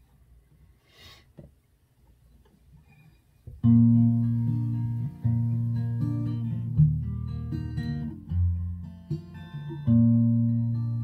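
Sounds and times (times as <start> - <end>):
soft breath: 0.5 - 1.4.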